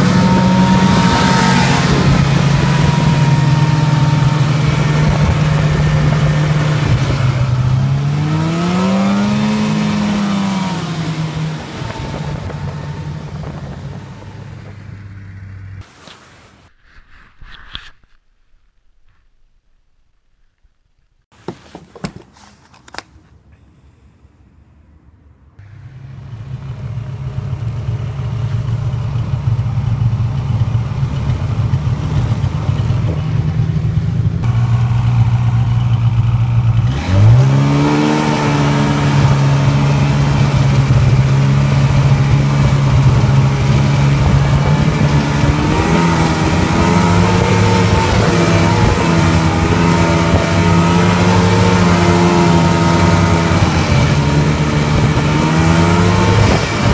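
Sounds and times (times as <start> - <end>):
snowmobile engine revving: 0.0 - 16.1, 25.6 - 56.9.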